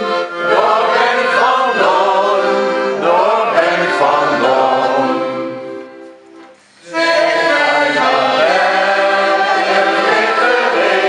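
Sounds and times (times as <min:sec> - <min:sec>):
group singing in unison: 0:00.0 - 0:05.9, 0:06.8 - 0:11.0
accordion: 0:00.0 - 0:11.0.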